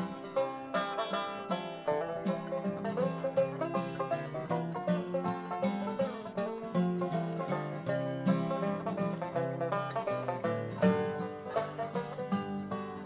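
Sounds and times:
acoustic guitar rhythm: 0.0s - 13.0s
banjo picking fast notes: 0.0s - 13.0s.

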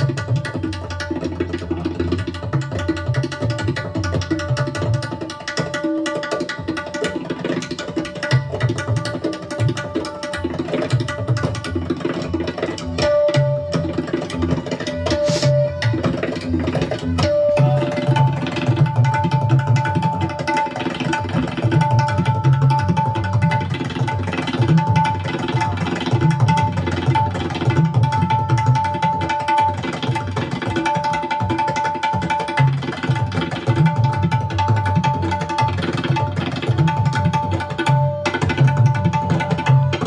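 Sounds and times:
tabla drumming: 0.0s - 40.0s
short hiss: 15.1s - 15.8s.

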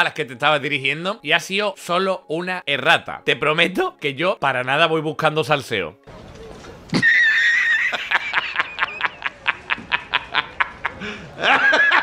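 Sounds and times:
man laughing staccato: 7.0s - 12.0s.

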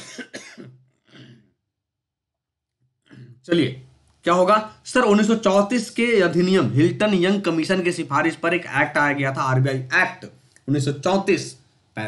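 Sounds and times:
man clearing throat and coughing: 0.0s - 1.6s, 3.1s - 3.4s.

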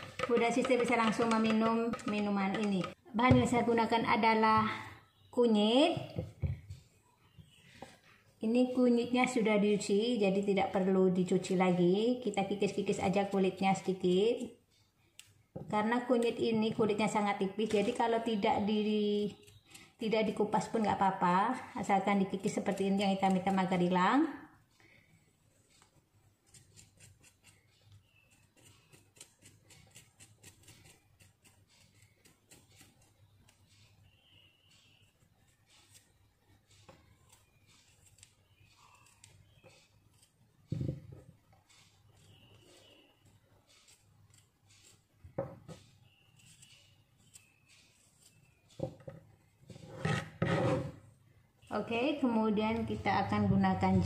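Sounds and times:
knife scraping root skin: 25.7s - 33.9s, 34.7s - 40.5s, 41.7s - 45.1s, 45.8s - 48.7s.

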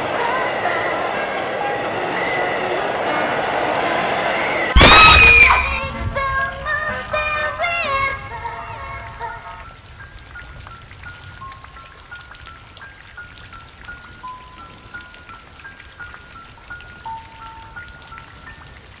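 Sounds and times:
high plinked music-box notes: 16.0s - 18.8s.

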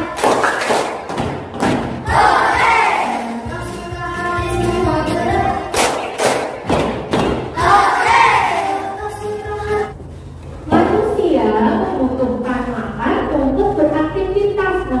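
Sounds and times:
children and woman singing: 2.1s - 5.8s, 7.6s - 9.9s
loud thumps: 5.8s - 8.3s.

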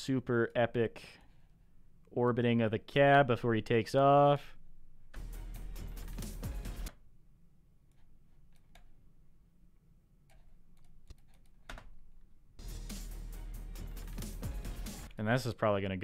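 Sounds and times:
soundtrack music: 12.6s - 15.1s.

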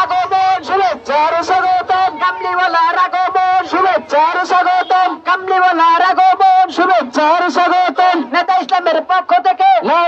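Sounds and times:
man chanting through loudspeaker: 0.0s - 10.0s.

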